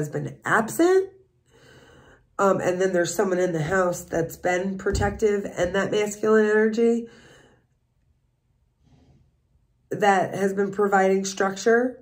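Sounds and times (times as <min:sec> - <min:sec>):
woman speaking: 0:00.0 - 0:01.2, 0:02.4 - 0:07.1, 0:09.9 - 0:12.0
soft breath: 0:01.4 - 0:02.3, 0:07.1 - 0:07.7, 0:08.8 - 0:09.3.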